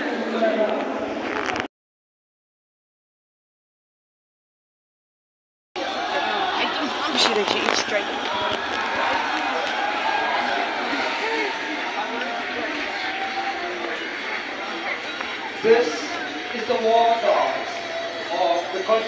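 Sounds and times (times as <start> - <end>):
crowd babble: 0.0 - 1.7, 5.8 - 19.0.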